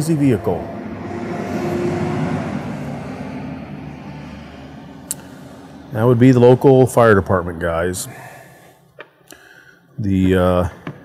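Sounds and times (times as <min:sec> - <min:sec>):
fire engine driving past: 0:00.0 - 0:08.3.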